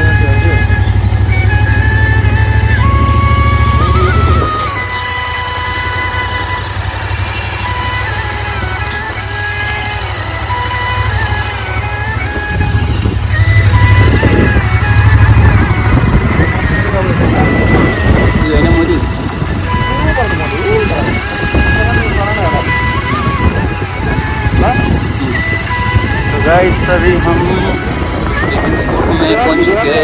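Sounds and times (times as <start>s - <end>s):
motorcycle rumble: 0.0s - 30.0s
wind on microphone: 2.6s - 9.3s, 11.8s - 30.0s.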